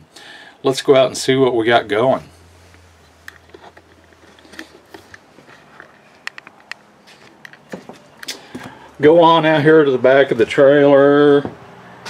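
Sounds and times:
footsteps: 2.7s - 8.8s, 10.2s - 12.0s.

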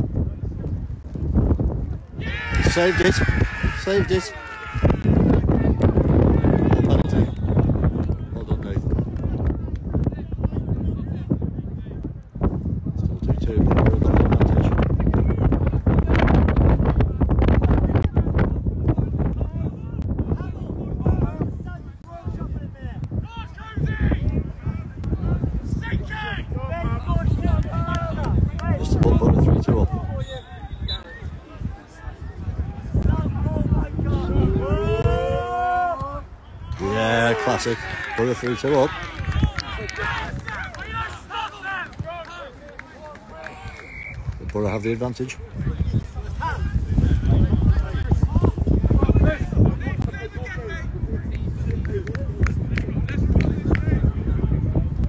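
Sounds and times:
wind buffeting microphone: 0.0s - 55.0s
distant raised voices calling: 2.2s - 5.3s.

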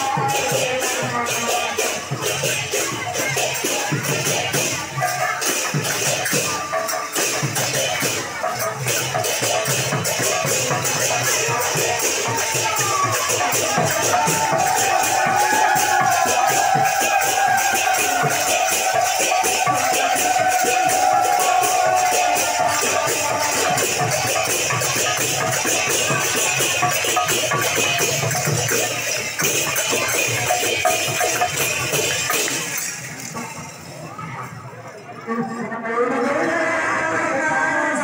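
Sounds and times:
hand cymbals clashing: 0.0s - 34.7s.

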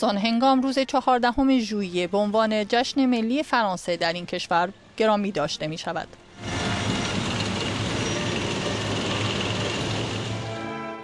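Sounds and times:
tank engines humming: 6.3s - 10.9s.

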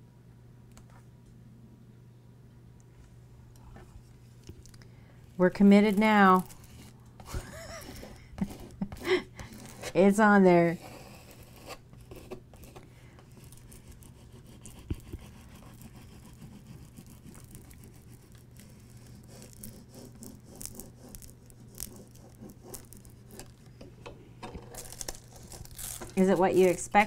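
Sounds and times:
plastic squeegee scraping tape: 13.4s - 23.7s, 24.7s - 27.0s.

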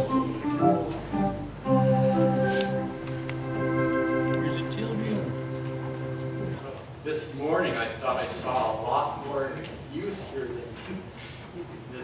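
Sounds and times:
organ chord: 0.0s - 6.6s
man speaking: 4.4s - 5.4s.

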